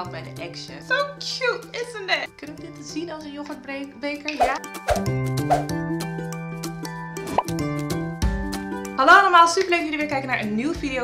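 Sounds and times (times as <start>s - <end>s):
rising cartoon pop: 7.3s - 7.6s.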